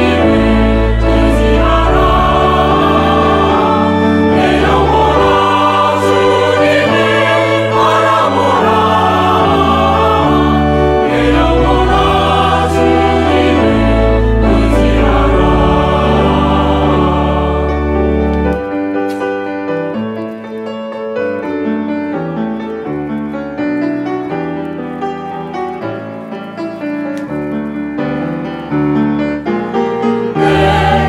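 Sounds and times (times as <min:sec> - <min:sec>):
choir singing a hymn: 0:00.0 - 0:18.8, 0:30.0 - 0:31.0.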